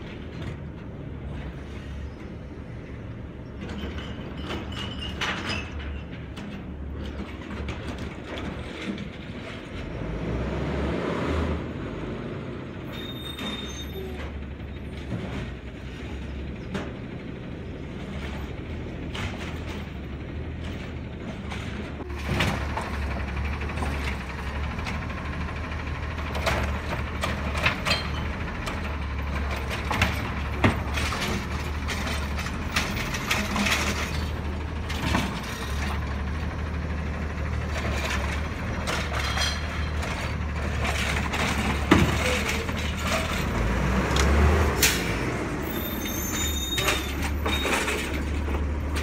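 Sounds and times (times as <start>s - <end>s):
metal arm and cart clanking: 0.0s - 10.4s, 12.7s - 49.0s
garbage truck diesel engine running: 11.6s - 49.0s
hydraulic arm lifting cart: 12.8s - 49.0s.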